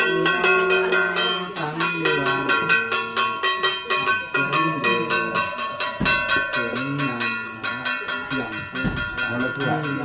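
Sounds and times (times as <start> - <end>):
metal percussion ringing: 0.0 - 10.0.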